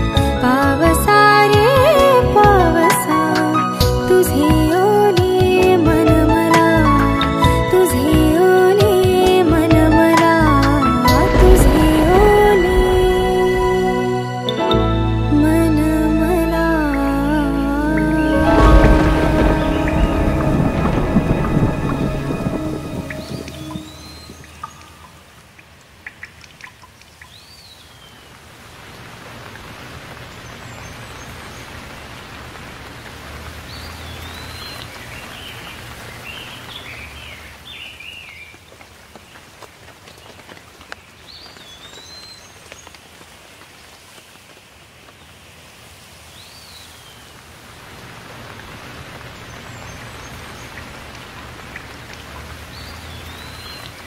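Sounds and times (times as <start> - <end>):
steady rain: 0.0 - 54.0.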